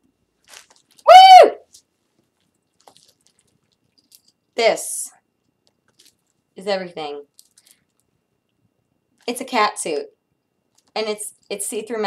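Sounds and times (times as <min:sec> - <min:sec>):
woman whooping: 0:01.1 - 0:01.6.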